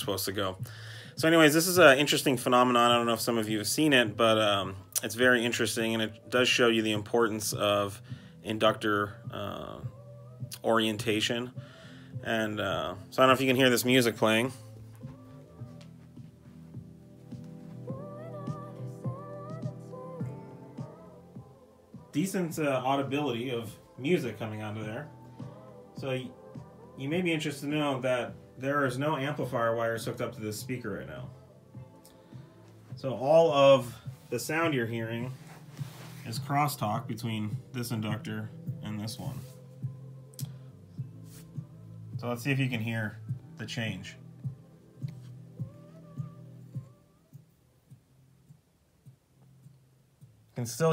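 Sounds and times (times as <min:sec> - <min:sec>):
quiet music from loudspeaker: 0:00.0 - 0:50.9.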